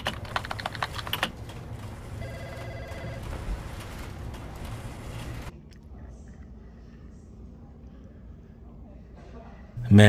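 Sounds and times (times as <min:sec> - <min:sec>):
keyboard typing clicks: 0:00.0 - 0:01.6
desk telephone ringing: 0:02.2 - 0:04.0.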